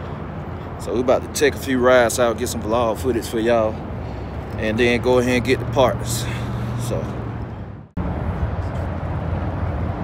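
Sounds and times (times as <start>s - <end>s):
outdoor background noise: 0.0s - 10.0s
vehicle engines rumbling: 0.0s - 10.0s.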